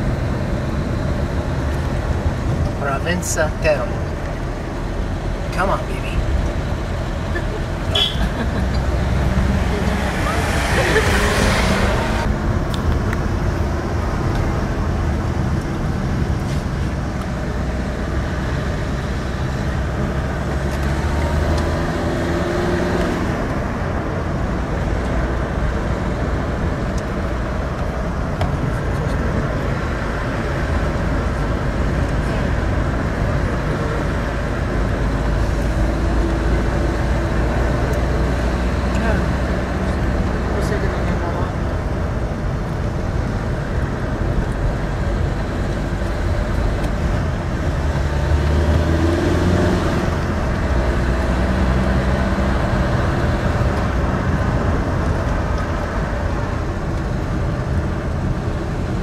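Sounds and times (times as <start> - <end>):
car engine and road noise: 0.0 - 59.0.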